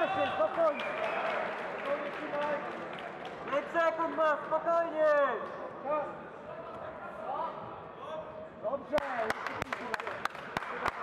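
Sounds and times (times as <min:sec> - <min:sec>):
background hall noise: 0:00.0 - 0:11.0.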